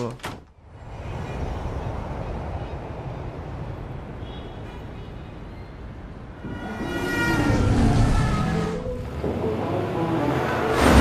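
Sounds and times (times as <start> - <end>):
city traffic rumble: 0.0 - 11.0.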